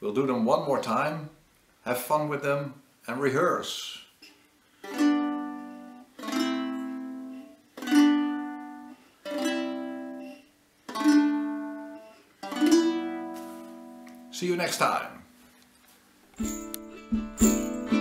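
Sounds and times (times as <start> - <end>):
lyre chords strummed: 4.8 - 15.4, 16.3 - 18.0.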